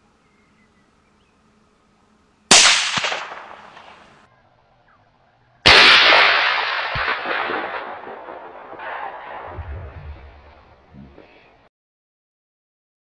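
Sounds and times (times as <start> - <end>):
rifle shots echoing: 2.5 - 4.2, 5.6 - 9.6.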